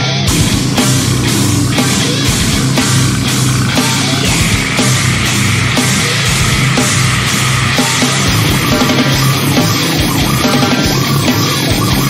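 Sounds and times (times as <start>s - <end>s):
death metal music: 0.0s - 12.0s
distorted electric guitars: 0.0s - 12.0s
kick drum strokes: 0.3s - 12.0s.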